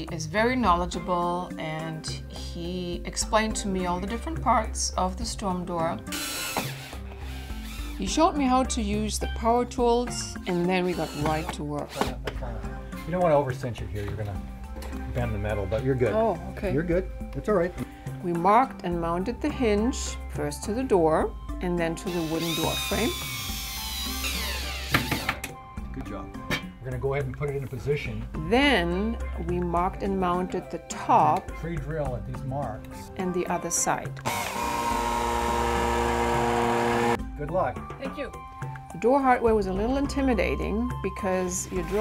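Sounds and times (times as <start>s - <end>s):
light background music: 0.0s - 42.0s
cordless drill driving a screw: 6.1s - 8.0s, 10.9s - 11.5s, 22.1s - 25.4s, 34.2s - 37.2s.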